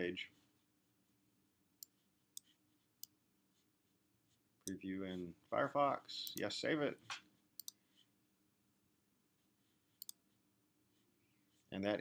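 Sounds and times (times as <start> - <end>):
computer mouse clicking: 7.6 - 7.8, 10.0 - 10.2.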